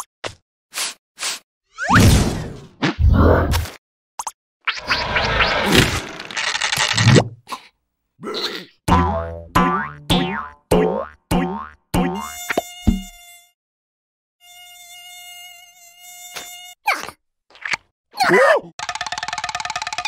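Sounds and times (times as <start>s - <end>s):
cartoon mosquito buzzing: 12.0s - 13.6s, 14.4s - 17.1s.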